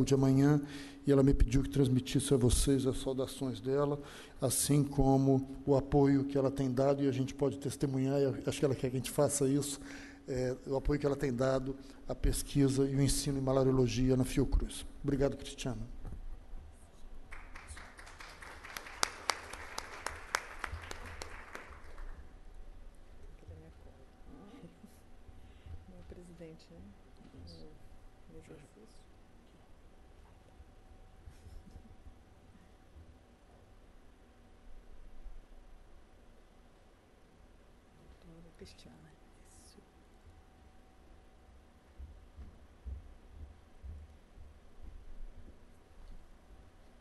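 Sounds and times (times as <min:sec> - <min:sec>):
low steady hum: 0:00.0 - 0:47.0
audience applauding: 0:17.3 - 0:22.3
soft whisper: 0:23.2 - 0:29.6, 0:38.0 - 0:40.0.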